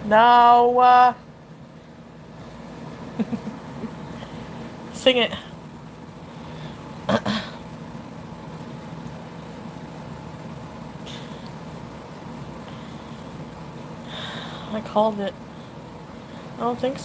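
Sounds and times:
low background hum: 0:00.0 - 0:17.0.

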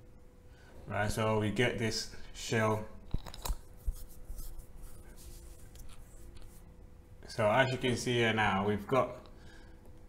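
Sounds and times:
thin steady hum: 0:00.0 - 0:10.0.

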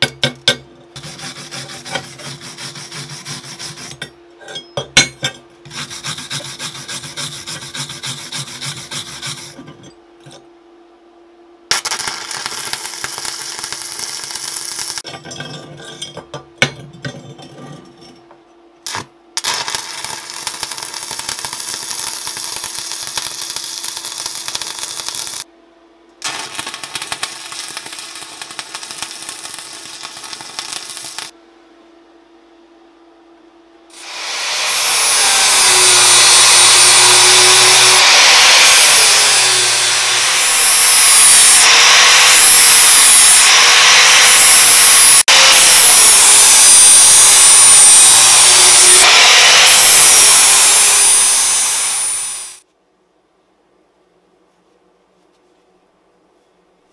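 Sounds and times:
angle grinder grinding steel: 0:01.0 - 0:04.8, 0:05.7 - 0:10.4, 0:33.9 - 0:52.6
welding arc crackling: 0:11.7 - 0:15.0, 0:18.9 - 0:25.5, 0:26.2 - 0:31.4, 0:34.7 - 0:52.6.

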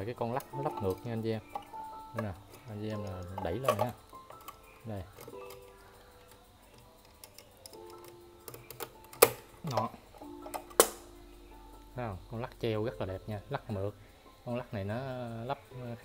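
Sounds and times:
small ticks: 0:00.0 - 0:11.0
held musical notes: 0:00.0 - 0:16.0
clock pendulum metal clicks: 0:00.2 - 0:11.0.

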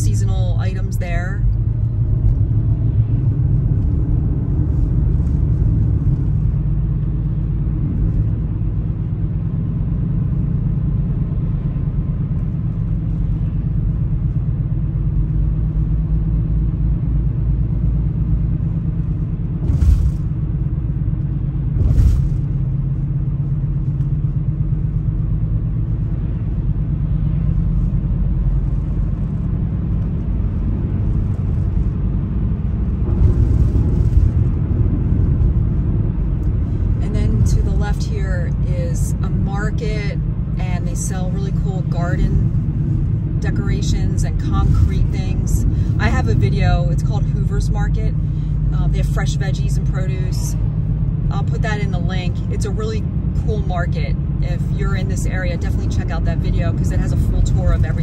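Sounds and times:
car driving rumble from inside: 0:00.0 - 0:58.0.

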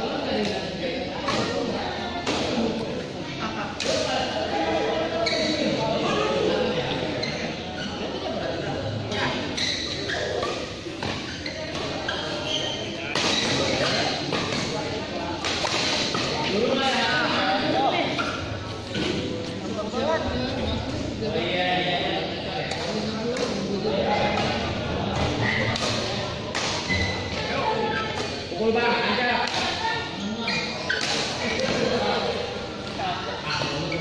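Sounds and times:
people talking: 0:00.0 - 0:34.0.

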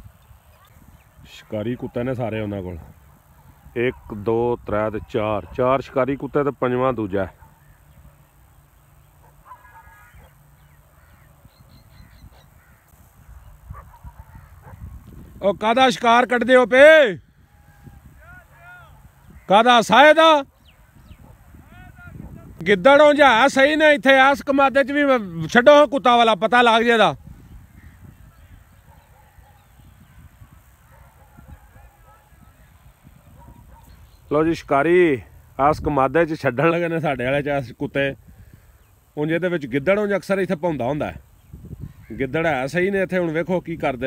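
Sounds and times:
wind rumble on microphone: 0:00.0 - 0:01.5, 0:02.5 - 0:05.6, 0:11.0 - 0:15.8, 0:17.2 - 0:19.5, 0:20.5 - 0:22.9, 0:27.1 - 0:34.7, 0:41.1 - 0:42.4
distant bird calls: 0:05.1 - 0:15.4, 0:17.2 - 0:22.5, 0:27.2 - 0:37.1, 0:38.2 - 0:43.4
high bird chirps: 0:10.0 - 0:13.6.

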